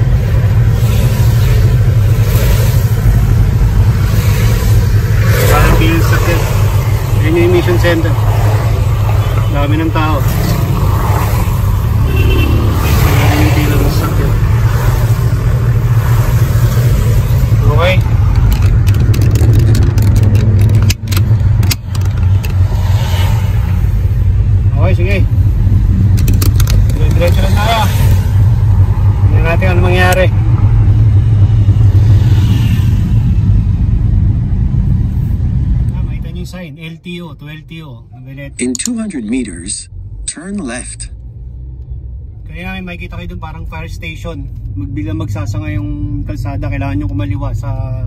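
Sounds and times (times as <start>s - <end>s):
car engine and road rumble: 0.0s - 48.0s.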